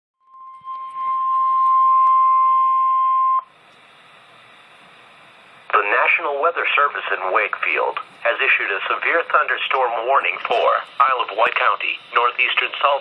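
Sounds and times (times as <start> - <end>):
steady warning alarm tone: 0.2 - 5.7, 7.0 - 13.0
faint receiver hiss: 3.5 - 13.0
automated voice: 5.7 - 13.0.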